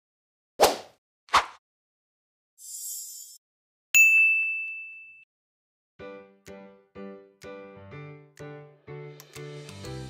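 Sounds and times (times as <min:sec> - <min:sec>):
bright ding chime: 0:04.0 - 0:05.3.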